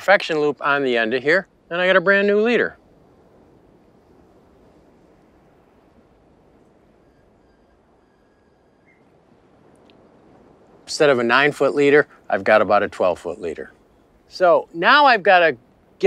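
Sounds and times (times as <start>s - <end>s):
steady background hiss: 0.0s - 16.0s
faint thin high tone: 7.0s - 9.1s.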